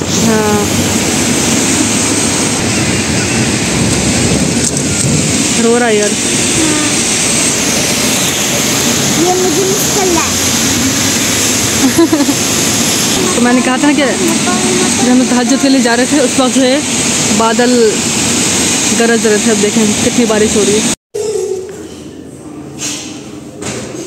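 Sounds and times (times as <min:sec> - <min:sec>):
heavy rain: 0:00.0 - 0:21.0.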